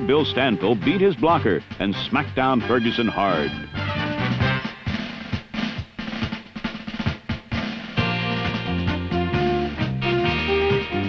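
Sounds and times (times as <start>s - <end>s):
drum break snare and bass drum: 0.0s - 11.0s.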